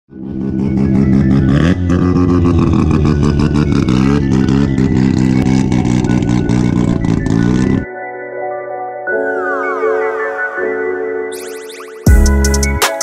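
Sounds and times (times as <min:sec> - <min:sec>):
car engine revving hard: 0:00.2 - 0:07.8.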